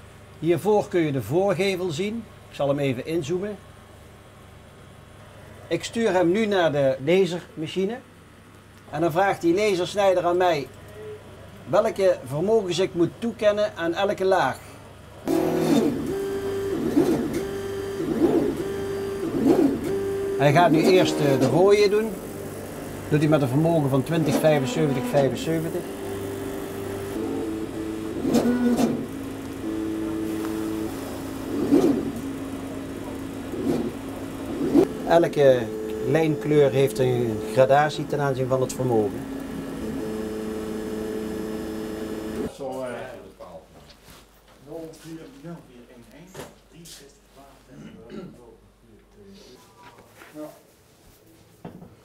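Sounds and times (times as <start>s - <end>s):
laser cutter motors whining: 15.3s - 42.5s.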